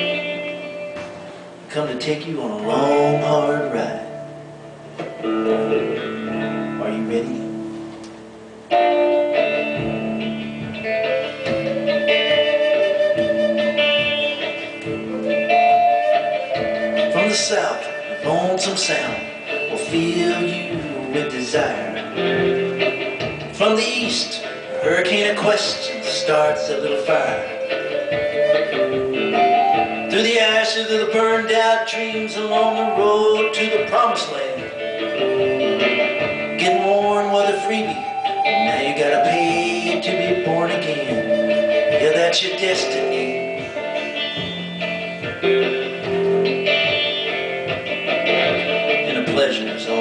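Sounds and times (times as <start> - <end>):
guitar accompaniment: 0.0 - 50.0
flute melody: 8.7 - 50.0.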